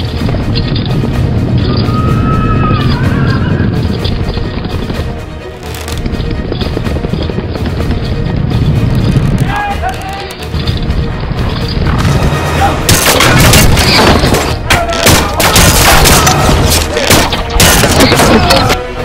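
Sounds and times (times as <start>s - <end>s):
low rumble of charging horses: 0.0s - 9.5s
battle soundtrack music: 0.0s - 19.0s.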